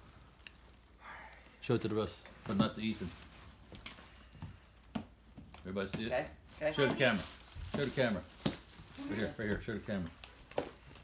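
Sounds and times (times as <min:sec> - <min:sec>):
faint rustling: 0:01.8 - 0:04.8.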